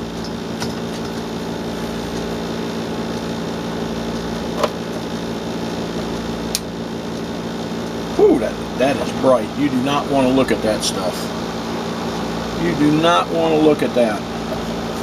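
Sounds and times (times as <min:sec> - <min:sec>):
steady mechanical hum: 0:00.0 - 0:15.0.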